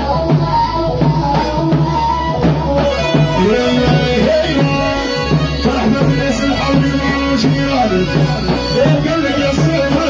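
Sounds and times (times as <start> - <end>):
amplified band playing: 0.0 - 10.0
man singing into a microphone: 0.0 - 10.0.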